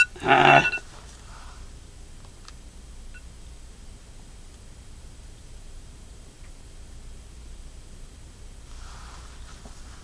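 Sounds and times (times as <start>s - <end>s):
steady low hum: 0.0s - 10.0s
faint hiss: 0.8s - 10.0s.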